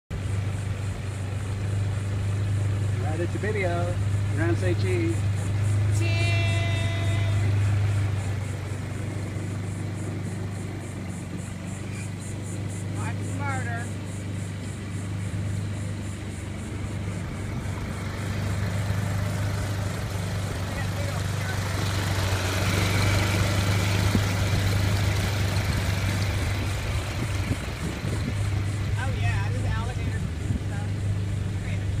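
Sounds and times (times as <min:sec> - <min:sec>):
outboard motor running: 0:00.1 - 0:32.0.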